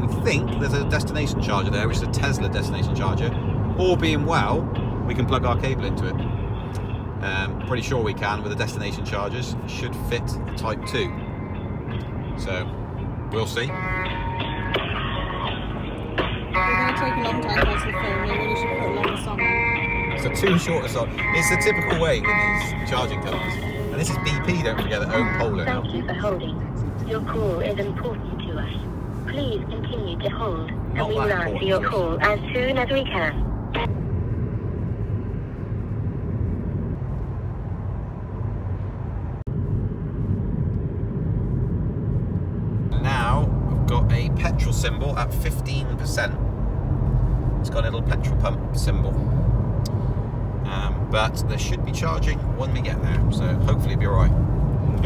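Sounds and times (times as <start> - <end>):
car road and tyre noise: 0.0 - 55.0
hold music through phone speaker: 13.7 - 25.7.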